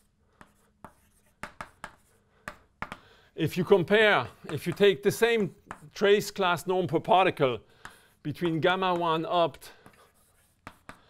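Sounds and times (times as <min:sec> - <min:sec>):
chalk tapping and scraping: 0:00.0 - 0:11.0.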